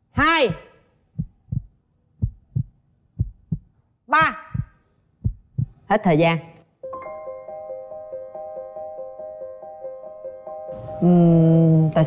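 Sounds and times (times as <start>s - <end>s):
low heartbeat thumps: 1.1s - 5.8s.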